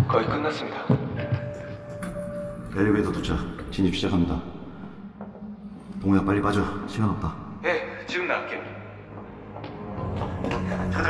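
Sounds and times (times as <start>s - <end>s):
low sustained film score tones: 1.3s - 11.0s.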